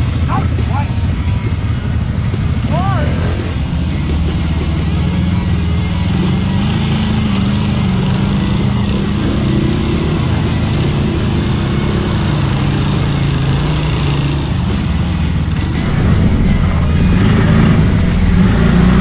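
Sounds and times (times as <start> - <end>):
dirt bike engine running: 0.0 - 19.0.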